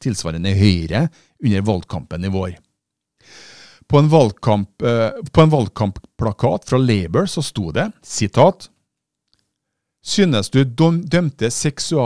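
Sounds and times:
man speaking: 0:00.0 - 0:02.7, 0:03.9 - 0:08.8, 0:10.0 - 0:12.0.

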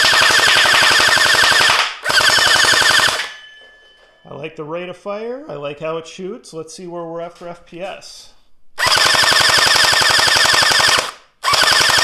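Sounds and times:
gel ball blaster firing full-auto: 0:00.0 - 0:03.3, 0:08.8 - 0:12.0.

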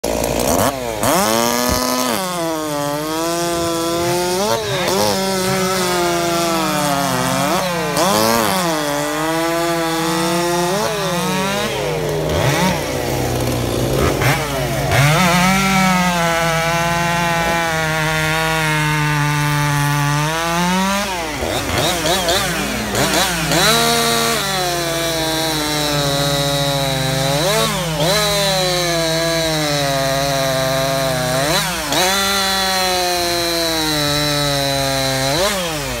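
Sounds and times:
chainsaw cutting log: 0:00.0 - 0:36.0.

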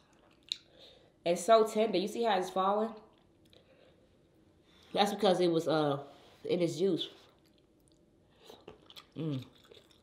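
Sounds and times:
mouth chewing sounds: 0:07.3 - 0:10.0.

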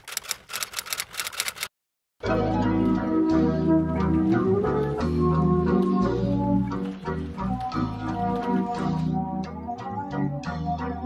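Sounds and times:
typewriter keys clicking: 0:00.0 - 0:01.7.

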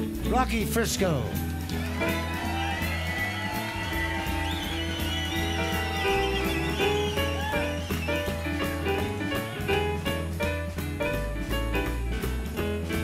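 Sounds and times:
live blues-rock band playing: 0:01.3 - 0:13.0.

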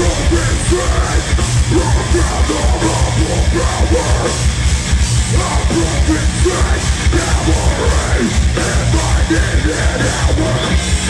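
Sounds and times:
distorted guitars and bass: 0:00.0 - 0:11.0.

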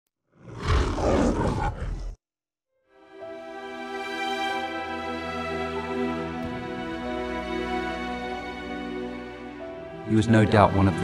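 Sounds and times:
lion roaring: 0:00.4 - 0:02.2.

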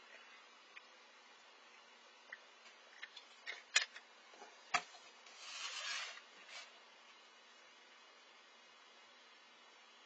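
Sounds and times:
paper plate scraping across mat: 0:05.3 - 0:06.8.

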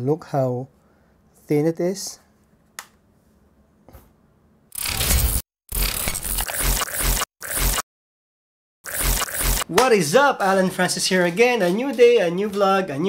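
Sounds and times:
crackling glitch sound effect: 0:04.8 - 0:07.8, 0:08.8 - 0:09.7.

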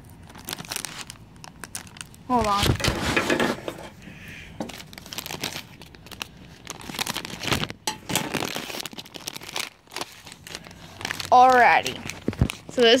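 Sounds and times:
plastic bag crinkling: 0:00.0 - 0:03.6, 0:04.6 - 0:13.0.

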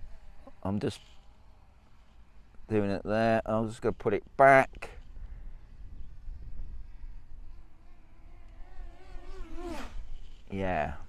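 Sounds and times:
drone propellers whining: 0:00.0 - 0:02.8, 0:05.0 - 0:11.0
low steady rumble: 0:00.0 - 0:11.0.

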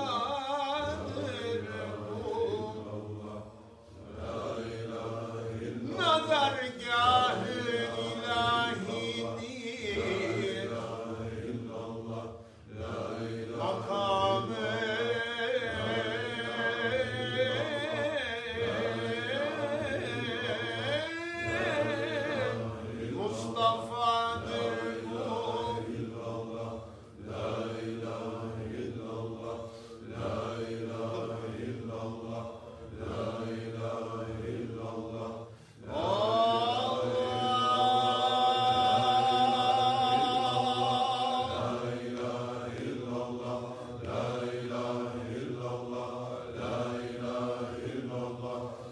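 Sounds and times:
low group chanting: 0:00.0 - 0:48.9
lead voice singing: 0:30.1 - 0:48.7.

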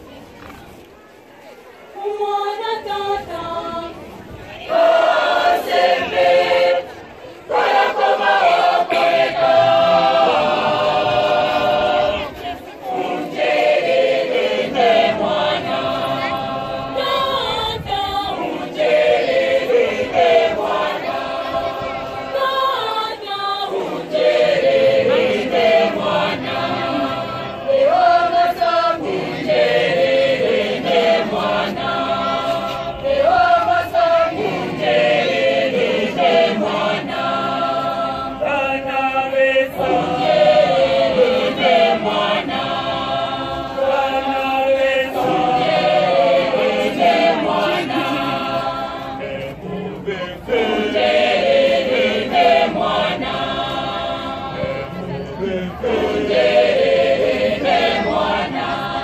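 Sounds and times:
choir singing a hymn: 0:02.0 - 0:59.0.

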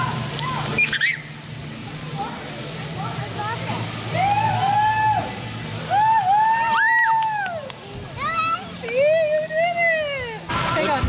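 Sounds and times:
water pouring and splashing: 0:00.0 - 0:11.0.

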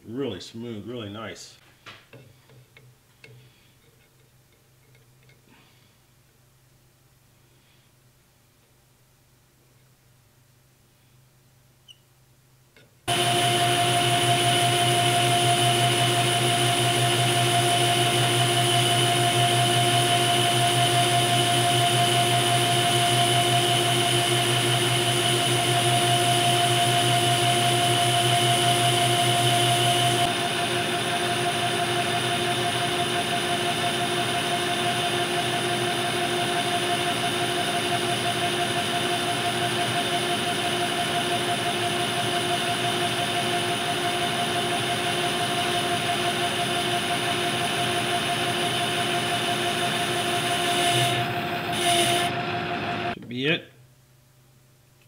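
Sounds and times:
metal lathe whining: 0:13.1 - 0:53.2.

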